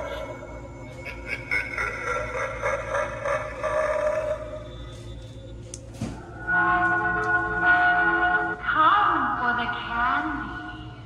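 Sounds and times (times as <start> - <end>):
eerie electronic sound effects: 0.0 - 11.0.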